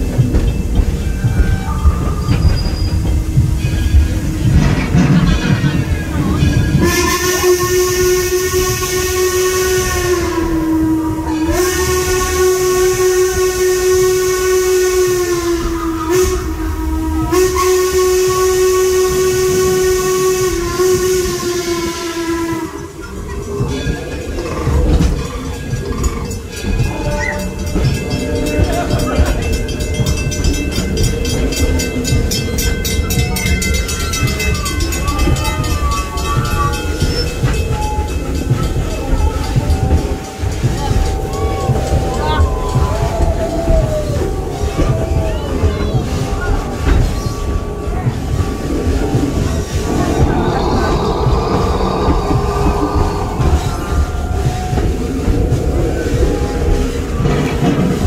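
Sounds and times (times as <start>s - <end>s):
moving train rumble: 0.0s - 58.0s
steam locomotive whistle: 6.0s - 58.0s.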